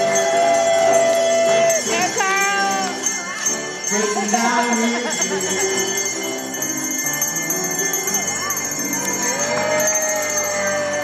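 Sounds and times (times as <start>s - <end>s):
hand bells ringing: 0.0s - 11.0s
song: 0.0s - 11.0s.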